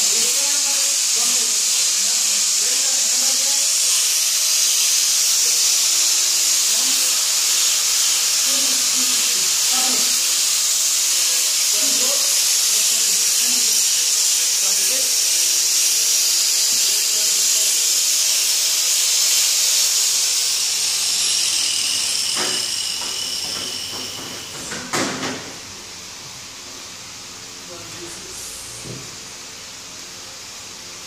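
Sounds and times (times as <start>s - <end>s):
high-pitched machinery hiss: 0.0s - 31.0s.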